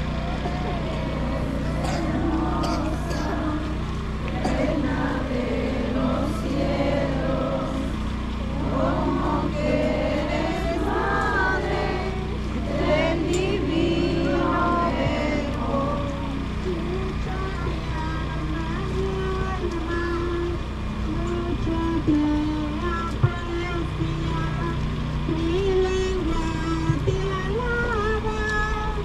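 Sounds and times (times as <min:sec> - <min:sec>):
crowd voices: 0:00.0 - 0:23.6
slow hymn melody: 0:00.0 - 0:29.0
steady low hum: 0:00.0 - 0:29.0.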